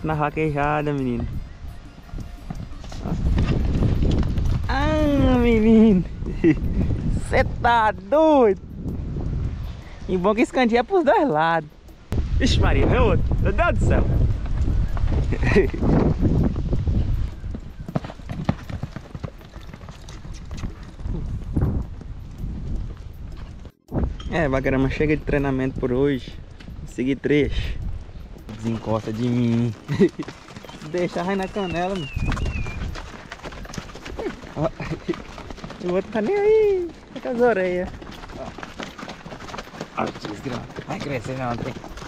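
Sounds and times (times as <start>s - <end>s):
horse hooves galloping on sand: 0.0s - 9.6s, 12.9s - 23.8s, 24.6s - 42.0s.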